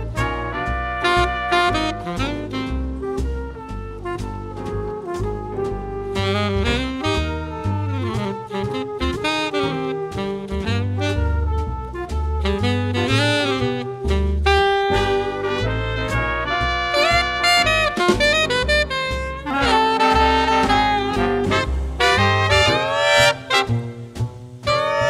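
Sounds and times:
rising horn run: 0.0 - 24.0
swing jazz band playing: 0.0 - 25.0.

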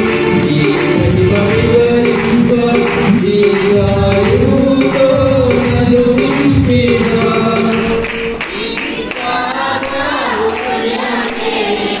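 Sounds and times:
percussion hits: 0.0 - 12.0
praise song singing: 0.0 - 12.0.

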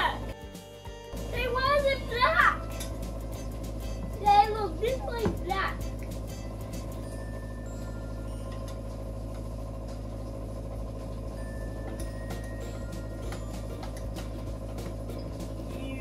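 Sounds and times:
steady low hum: 0.0 - 16.0
child's voice: 1.3 - 2.7, 4.1 - 5.8.

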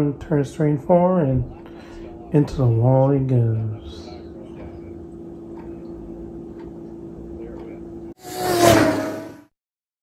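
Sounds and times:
low hum with held tone: 0.0 - 8.2.

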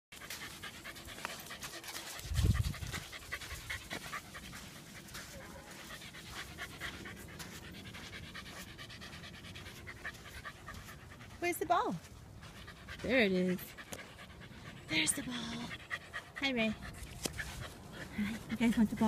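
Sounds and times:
footsteps on wet sand: 0.1 - 14.2
dogs panting: 0.1 - 19.0.

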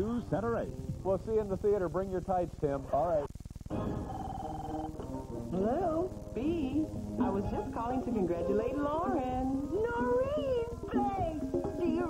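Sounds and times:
light background music: 0.0 - 12.0.

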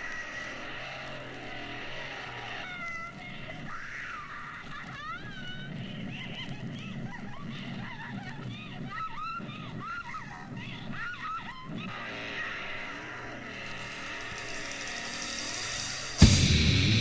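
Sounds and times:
animal calls rising and falling: 0.0 - 6.4, 7.9 - 16.2.

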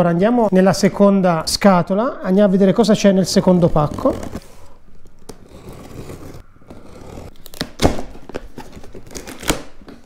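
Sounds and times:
tape and cardboard crackling: 5.0 - 10.0
scissors cutting packing tape: 5.2 - 10.0.

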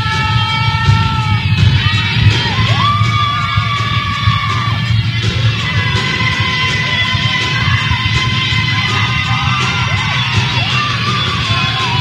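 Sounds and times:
crowd cheering and yelling: 0.0 - 12.0
live pop band playing: 0.0 - 12.0.

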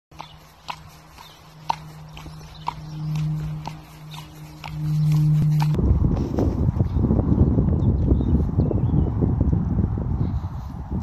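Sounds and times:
horse hooves clopping on tarmac: 0.1 - 5.8
low hum: 0.1 - 8.6
rushing noise: 0.5 - 6.2.

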